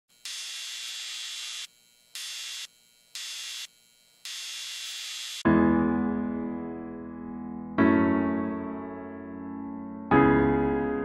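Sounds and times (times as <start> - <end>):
electronic static bursts: 0.1 - 5.4.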